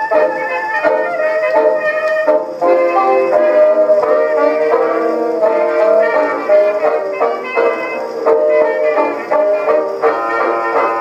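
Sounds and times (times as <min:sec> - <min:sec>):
jazz band on old recording: 0:00.0 - 0:11.0.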